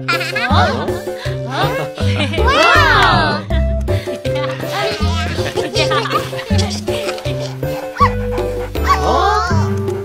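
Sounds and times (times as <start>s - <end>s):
children's music: 0.0s - 10.0s
cartoon puppy yips: 8.0s - 9.7s.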